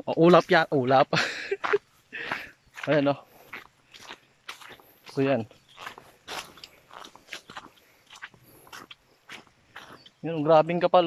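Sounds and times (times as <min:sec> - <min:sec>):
footsteps crunching through dry leaves: 0:00.2 - 0:11.0.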